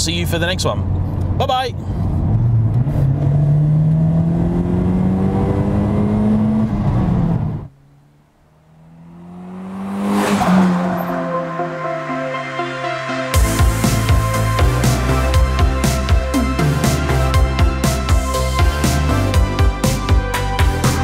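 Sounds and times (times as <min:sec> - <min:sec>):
car engine accelerating inside cabin: 0:02.1 - 0:12.2
car passing by: 0:08.5 - 0:12.4.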